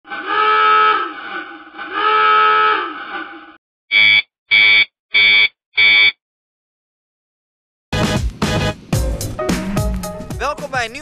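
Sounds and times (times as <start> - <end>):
short electronic beeps: 3.9 - 6.2.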